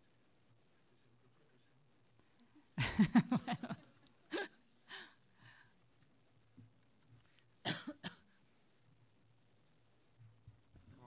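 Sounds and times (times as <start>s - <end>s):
person coughing: 7.6s - 8.2s.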